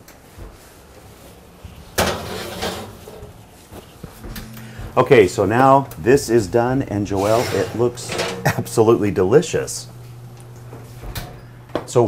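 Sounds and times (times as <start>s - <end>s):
oven rack rattling and scraping: 2.0s - 3.2s, 7.0s - 8.9s.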